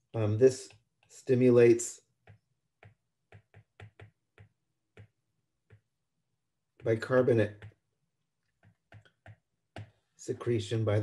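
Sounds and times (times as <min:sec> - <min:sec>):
stylus tapping on tablet screen: 0:02.2 - 0:05.9, 0:08.6 - 0:10.0.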